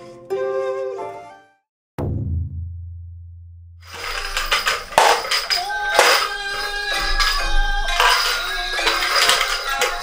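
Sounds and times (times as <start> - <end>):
deep low boom: 2.0 - 3.8
pellet drums rattling: 3.9 - 10.0.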